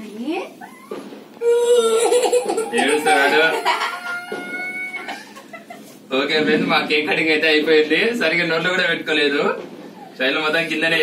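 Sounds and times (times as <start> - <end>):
chicken calling: 1.9 - 5.6.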